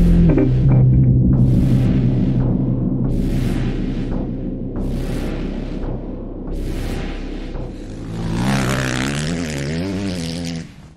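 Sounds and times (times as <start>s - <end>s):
engine running: 0.0s - 10.8s.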